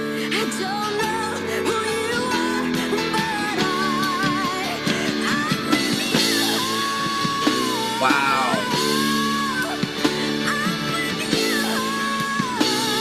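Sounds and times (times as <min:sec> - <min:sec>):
live rock band: 0:00.0 - 0:13.0
woman singing: 0:00.0 - 0:13.0.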